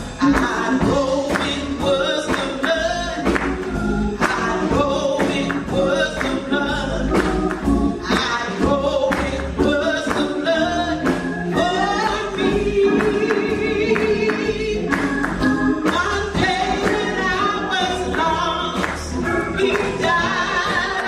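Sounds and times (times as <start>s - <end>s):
choir singing gospel: 0.0s - 21.0s
instrumental accompaniment: 0.0s - 21.0s.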